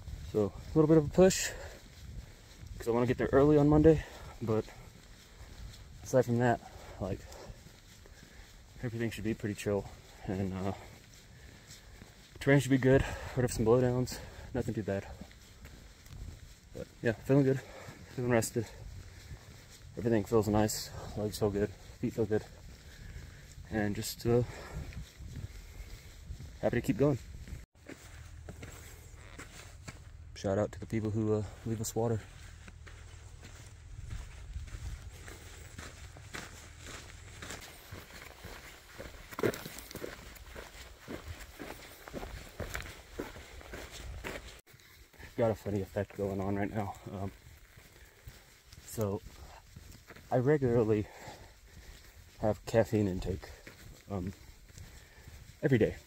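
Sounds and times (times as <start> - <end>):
footsteps on dirt trail: 0.0 - 56.0
man speaking: 0.3 - 1.7, 2.8 - 4.8, 6.0 - 7.4, 8.8 - 10.9, 12.4 - 15.2, 16.8 - 18.8, 20.0 - 22.5, 23.7 - 24.7, 26.6 - 27.2, 30.4 - 32.3, 45.2 - 47.4, 48.9 - 49.2, 50.3 - 51.2, 52.4 - 54.4, 55.6 - 56.0
faint low rumble: 24.4 - 38.3.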